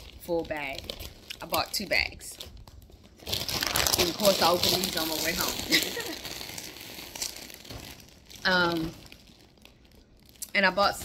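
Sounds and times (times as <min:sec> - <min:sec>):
plastic chip bag crinkling: 0:00.0 - 0:11.0.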